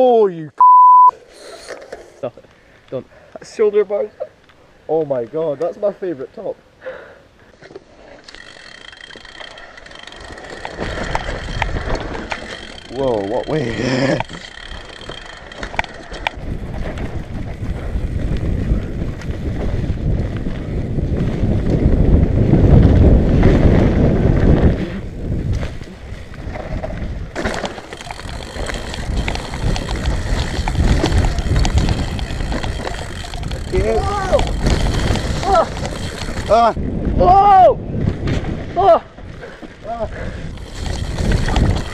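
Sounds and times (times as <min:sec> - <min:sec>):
mountain bike coasting on dirt: 0:07.3 - 0:37.2, 0:37.8 - 0:41.9
bike clattering over bumps: 0:08.3 - 0:24.6, 0:25.4 - 0:36.8, 0:39.2 - 0:41.9
wind rumble on microphone: 0:16.1 - 0:27.4, 0:28.0 - 0:41.9
person shouting whoa: 0:37.2 - 0:37.8.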